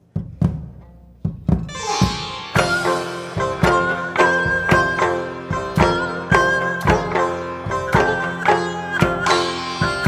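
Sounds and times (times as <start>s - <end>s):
zithers: 1.6s - 6.5s, 8.4s - 10.0s
sitar plucked notes: 1.6s - 10.0s
ringing drone: 1.7s - 4.7s.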